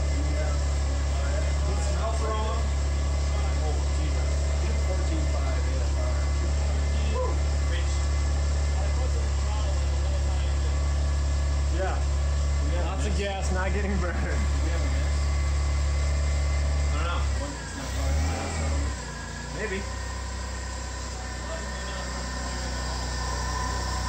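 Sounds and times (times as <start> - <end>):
car engine idling: 0.0 - 24.0.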